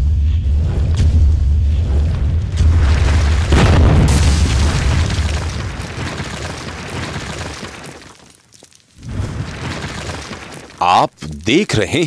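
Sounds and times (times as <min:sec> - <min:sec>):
deep low rumble and boom: 0:00.0 - 0:05.8
heavy crashing impact: 0:02.5 - 0:08.2.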